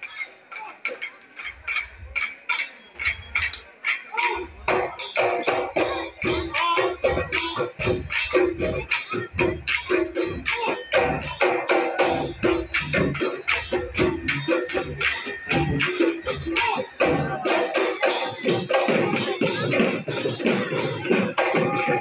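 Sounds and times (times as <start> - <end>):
dhol drums beating: 0.0 - 22.0
small cymbals clinking: 0.0 - 22.0.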